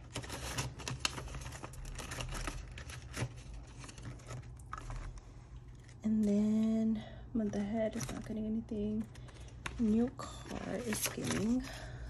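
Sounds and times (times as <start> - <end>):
paper rustling: 0.0 - 6.0, 7.5 - 11.9.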